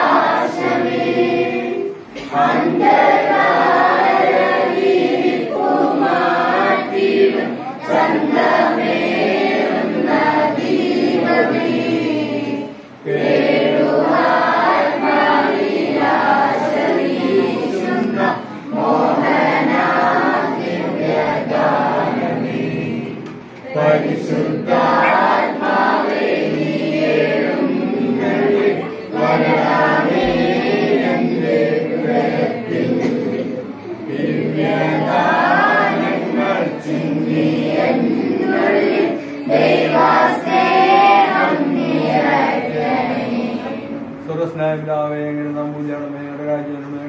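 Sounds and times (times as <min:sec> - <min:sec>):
girls and women singing a hymn: 0:00.0 - 0:44.3.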